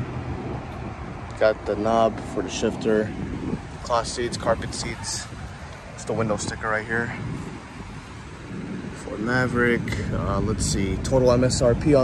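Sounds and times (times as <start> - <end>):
distant road traffic: 0.0 - 12.0
low outdoor rumble: 0.0 - 12.0.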